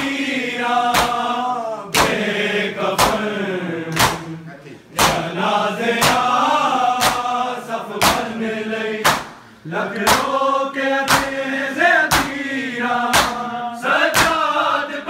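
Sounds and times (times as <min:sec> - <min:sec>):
men chanting in unison: 0:00.0 - 0:15.0
chest-beating slaps: 0:00.9 - 0:01.3, 0:01.9 - 0:02.3, 0:02.9 - 0:03.3, 0:03.9 - 0:05.4, 0:06.0 - 0:06.4, 0:07.0 - 0:07.4, 0:08.0 - 0:08.3, 0:09.0 - 0:10.4, 0:11.1 - 0:11.4, 0:12.1 - 0:12.5, 0:13.1 - 0:13.5, 0:14.1 - 0:14.5.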